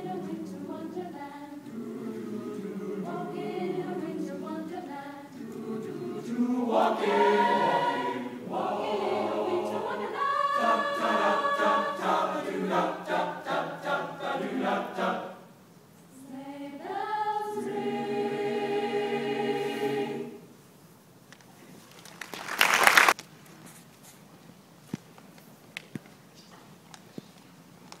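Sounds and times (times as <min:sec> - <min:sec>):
choir singing: 0:00.0 - 0:15.5, 0:16.1 - 0:20.6.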